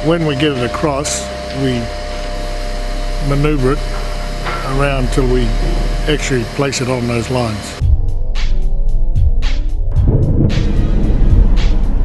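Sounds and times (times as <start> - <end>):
background music with a steady beat: 0.0 - 12.0
low rumble: 1.4 - 6.8, 7.7 - 12.0.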